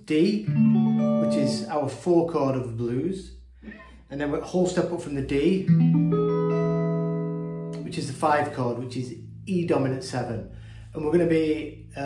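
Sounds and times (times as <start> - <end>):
electric guitar chord ringing: 0.4 - 2.0, 5.6 - 12.0.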